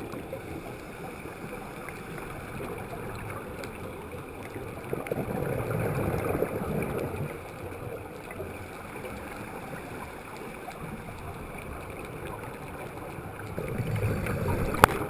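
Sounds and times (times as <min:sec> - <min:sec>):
underwater regulator bubbles gurgling: 0:00.0 - 0:15.0.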